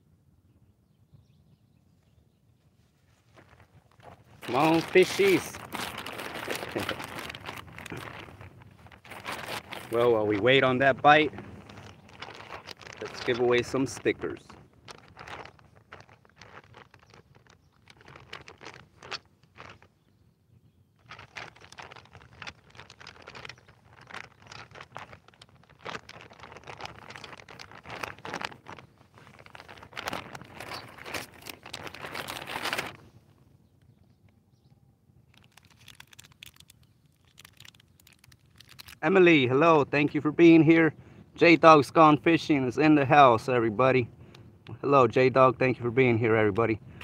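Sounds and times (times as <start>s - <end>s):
packaging rustling and crinkling: 3.2s - 20.1s, 21.0s - 33.2s, 35.3s - 39.1s
small clicks: 35.3s - 39.0s.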